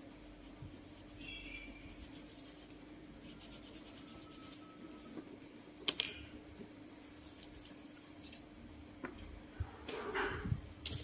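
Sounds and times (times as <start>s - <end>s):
scratching and rubbing on a desk: 0.0s - 5.1s
low steady hum: 0.0s - 11.0s.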